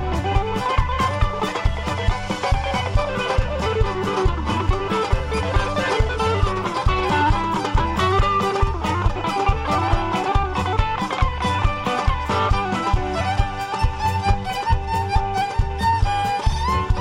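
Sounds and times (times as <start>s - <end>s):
plucked mandolin: 0.0s - 17.0s
steady drum beat: 0.0s - 17.0s
violin melody: 0.0s - 17.0s.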